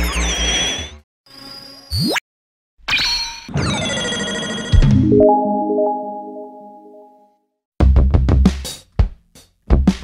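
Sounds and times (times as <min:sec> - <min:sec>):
electronic intro music: 0:04.8 - 0:07.3.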